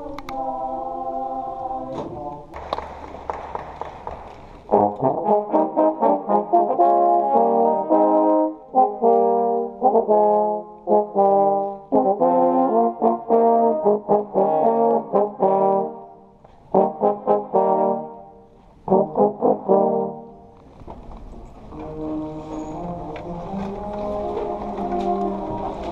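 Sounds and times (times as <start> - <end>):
trombone playing chords: 4.7 - 20.6, 21.7 - 25.9.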